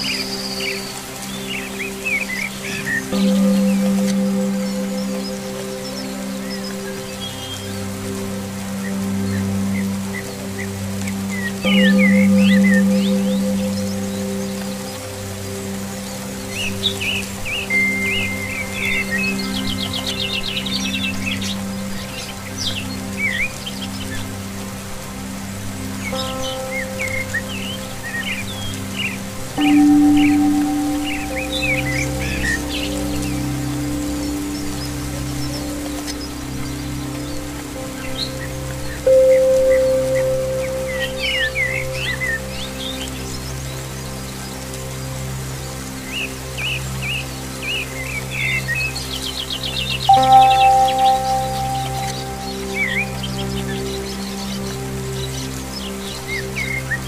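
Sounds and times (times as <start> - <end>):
ambient music with held chords: 0.0 - 57.0
songbirds chirping: 0.0 - 57.0
steady rain: 0.0 - 57.0.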